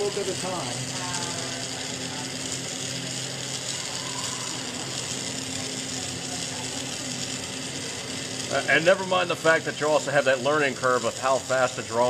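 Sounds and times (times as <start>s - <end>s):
steady low hum: 0.0s - 12.0s
torch flame hissing: 0.0s - 12.0s.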